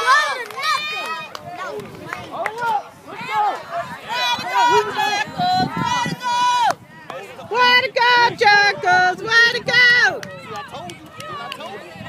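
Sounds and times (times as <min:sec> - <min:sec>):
faint shouting voices: 0:00.0 - 0:12.0.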